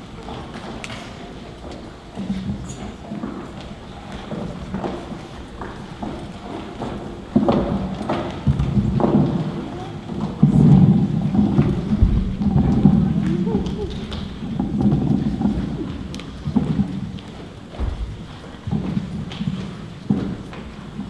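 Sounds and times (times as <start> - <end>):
audience noise in echoing hall: 0.0 - 21.0
footsteps on wooden stage: 0.0 - 21.0.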